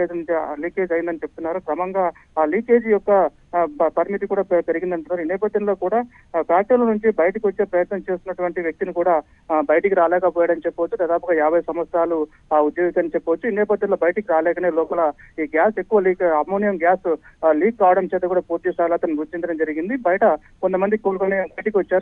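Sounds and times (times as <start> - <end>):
man speaking over telephone: 0.0 - 22.0.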